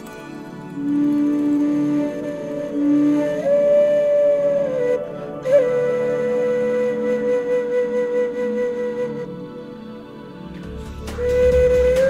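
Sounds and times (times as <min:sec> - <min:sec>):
slow background music: 0:00.0 - 0:12.0.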